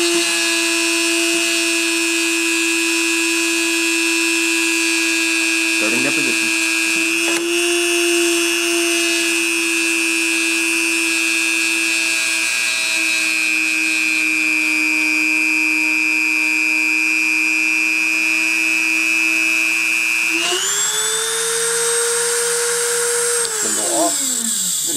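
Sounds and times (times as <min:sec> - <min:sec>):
rotary tool whine: 0:00.0 - 0:24.9.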